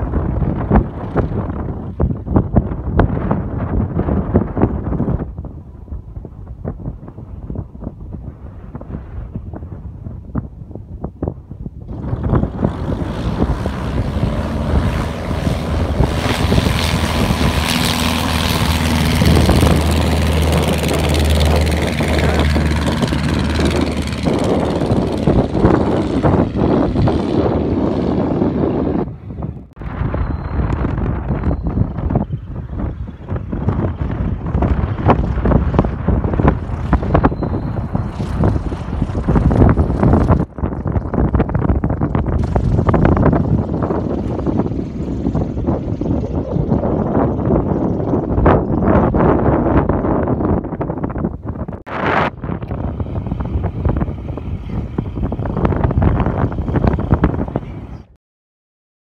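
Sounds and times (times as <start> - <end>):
wind buffeting microphone: 0.0 - 58.1
light aircraft engine roar: 0.0 - 58.2.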